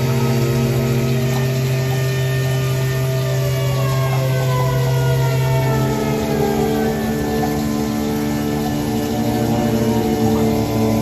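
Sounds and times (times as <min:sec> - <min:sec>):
background music of low held notes: 0:00.0 - 0:11.0.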